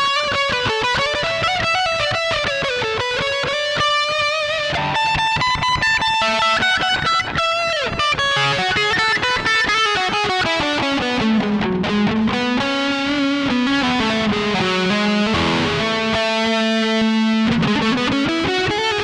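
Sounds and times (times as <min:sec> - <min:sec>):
distorted electric guitar lead: 0:00.0 - 0:19.0.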